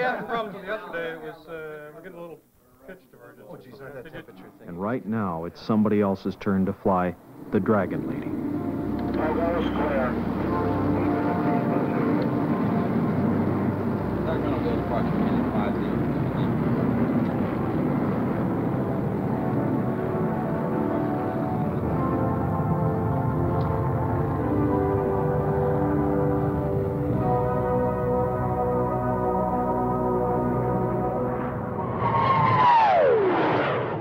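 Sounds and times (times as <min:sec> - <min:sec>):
jet engine at takeoff power: 0:11.5 - 0:21.9, 0:31.7 - 0:34.0
whoosh with downward sliding tone: 0:31.5 - 0:34.0.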